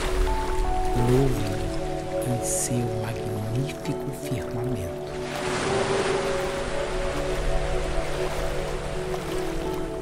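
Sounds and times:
ocean waves: 0.0s - 10.0s
soft ambient music: 0.0s - 10.0s.

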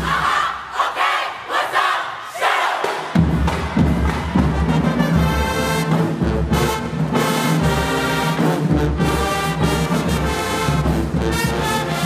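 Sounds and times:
group shouting a yell: 0.0s - 3.1s
marching band brass and drums: 2.4s - 12.0s.

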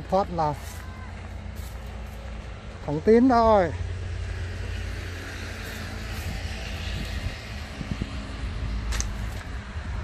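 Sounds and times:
highway traffic rumble: 0.0s - 10.0s
vehicle passing: 0.0s - 10.0s.

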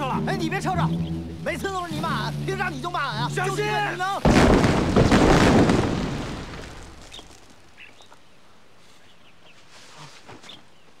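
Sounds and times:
explosion blast rumbling: 4.2s - 7.3s.

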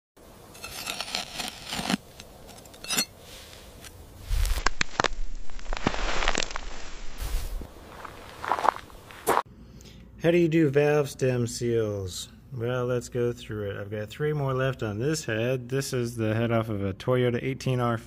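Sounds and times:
hands scraping loose soil: 0.5s - 9.4s.

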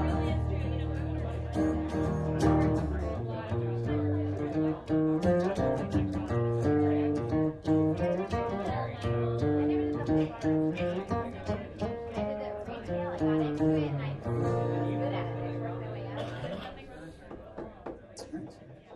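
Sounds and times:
acoustic guitar playing: 0.0s - 16.5s.

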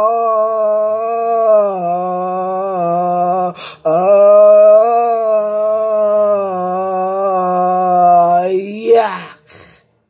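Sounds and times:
man singing a long note: 0.0s - 9.5s.

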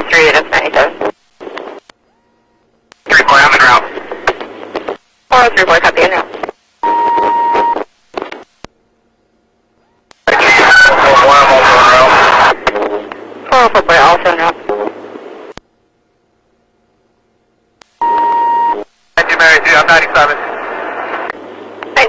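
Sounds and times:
garbled radio voice: 3.1s - 4.0s, 10.3s - 15.0s
radio beep: 6.8s - 7.9s, 18.0s - 20.4s.

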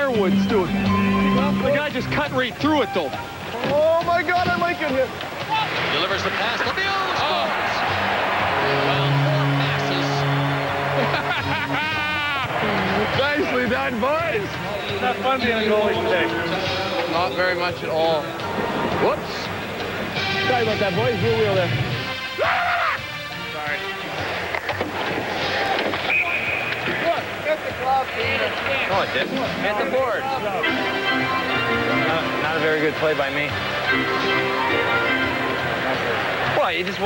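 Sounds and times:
crowd cheering: 1.3s - 21.2s, 23.8s - 37.0s
players shouting: 1.4s - 21.5s, 22.2s - 23.2s, 23.9s - 32.8s
hockey sticks and pucks clacking: 24.2s - 27.0s
referee's whistle blast: 26.0s - 27.0s.

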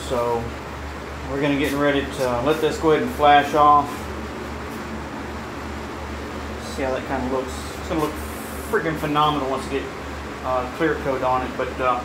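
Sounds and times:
ventilation fan rushing air: 0.0s - 12.0s.

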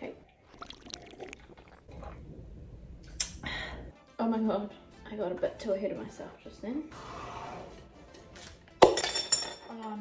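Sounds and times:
person drinking and swallowing: 0.3s - 3.5s
low rumble: 1.9s - 3.9s.

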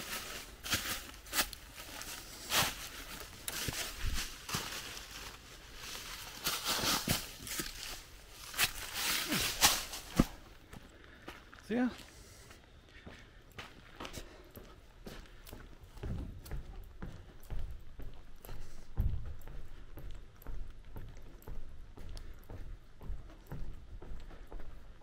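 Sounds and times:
footsteps on wooden deck: 7.0s - 25.0s.

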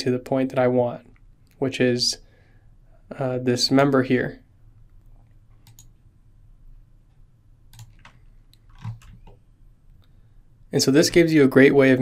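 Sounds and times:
faint computer mouse clicks: 4.9s - 6.0s, 7.7s - 9.4s.

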